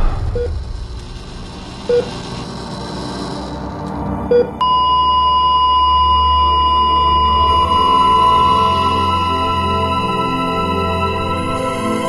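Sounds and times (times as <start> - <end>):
heart monitor beeping: 4.3 - 8.4
flatline tone: 4.3 - 10.9.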